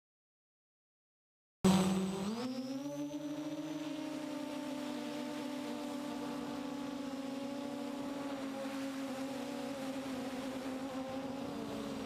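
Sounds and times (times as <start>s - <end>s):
drone motors whining: 1.7s - 12.0s.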